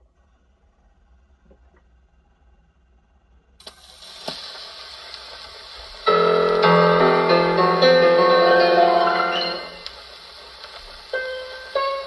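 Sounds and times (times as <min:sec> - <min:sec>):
record surface hiss: 0:03.6 - 0:12.0
gramophone music: 0:06.1 - 0:10.0, 0:11.2 - 0:12.0
gramophone needle touchdown: 0:06.1 - 0:10.0.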